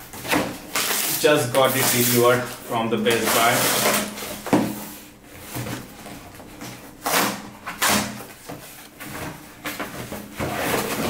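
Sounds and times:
cardboard scraping and rustling: 0.1s - 11.0s.

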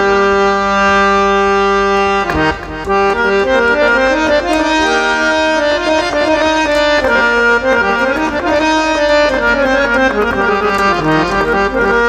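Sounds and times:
harmonium holding a note: 0.0s - 12.0s.

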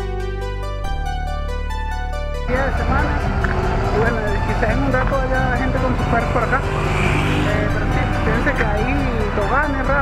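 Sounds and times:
background music: 0.0s - 10.0s
low wind rumble: 2.5s - 10.0s
man talking indistinctly: 2.5s - 10.0s.

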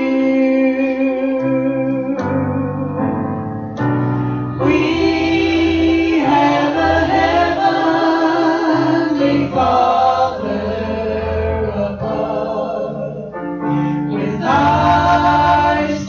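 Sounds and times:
choir singing worship song: 4.2s - 16.0s.

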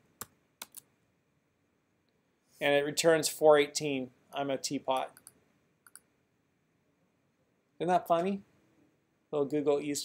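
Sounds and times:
computer keyboard keystrokes: 0.2s - 0.9s.

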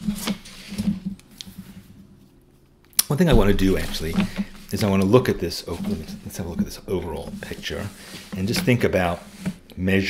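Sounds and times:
hand rubbing on paper: 3.3s - 9.6s.

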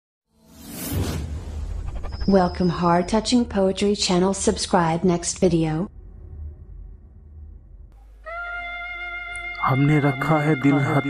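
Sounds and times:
whoosh sound effect: 0.4s - 3.0s.

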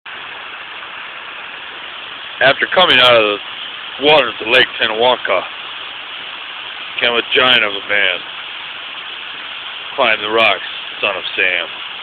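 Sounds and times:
waterfall cascading over rocks: 0.1s - 12.0s.

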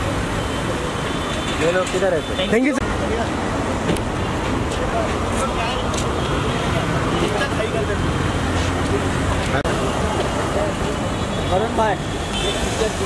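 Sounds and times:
traffic rumble: 0.0s - 13.0s.

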